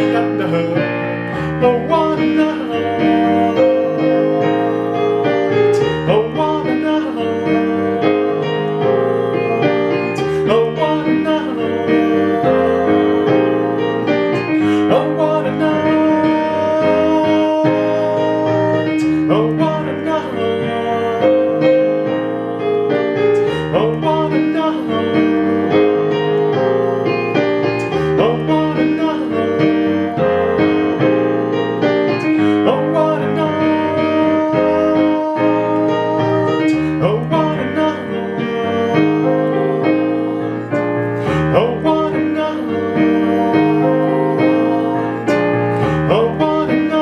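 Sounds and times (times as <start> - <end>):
digital piano playing chords: 0.0 - 47.0.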